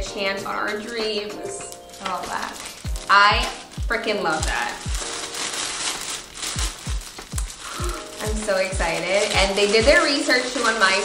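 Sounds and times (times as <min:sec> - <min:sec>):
background music: 0:00.0 - 0:11.0
plastic bag crinkling: 0:00.7 - 0:11.0
deep kick drum beat: 0:02.9 - 0:05.1, 0:06.4 - 0:10.0.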